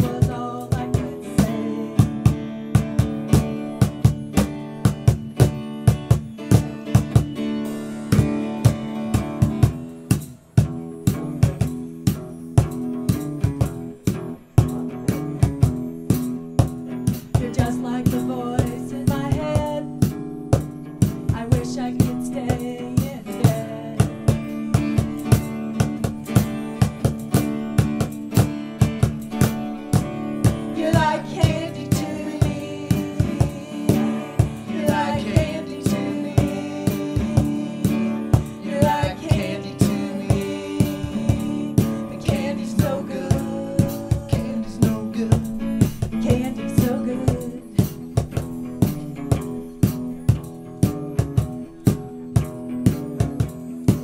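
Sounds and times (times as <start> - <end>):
acoustic guitar chords: 0.0 - 54.0
drum kit beat: 0.0 - 54.0.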